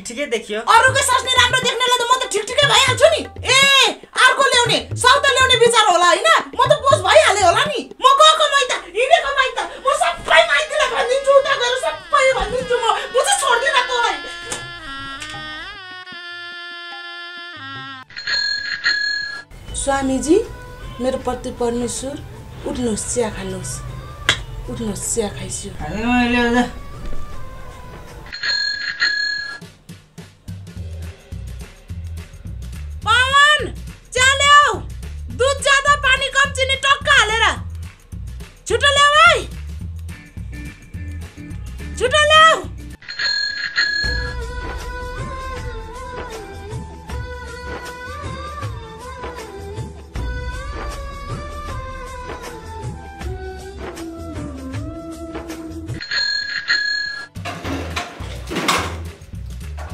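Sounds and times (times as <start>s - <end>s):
background music with low beat: 0.7s - 11.4s, 19.5s - 28.3s, 29.6s - 43.0s, 44.0s - 56.0s, 57.4s - 59.9s
bell ringing: 43.0s - 44.5s.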